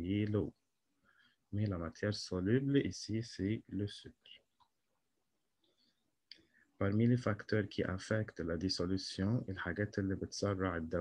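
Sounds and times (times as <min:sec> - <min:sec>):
man speaking: 0:00.0 - 0:00.6, 0:01.5 - 0:04.4, 0:06.8 - 0:11.0.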